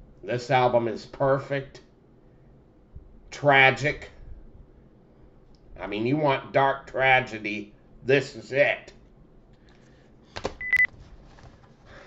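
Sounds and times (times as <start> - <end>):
electronic beep: 10.6 - 10.9.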